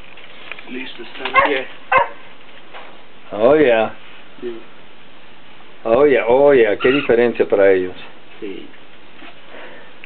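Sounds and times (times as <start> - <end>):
loud animal calls: 6.7 - 7.3.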